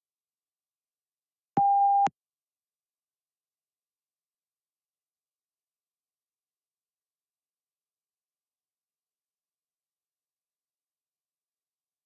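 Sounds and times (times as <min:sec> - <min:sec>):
electronic beep: 0:01.6 - 0:02.1.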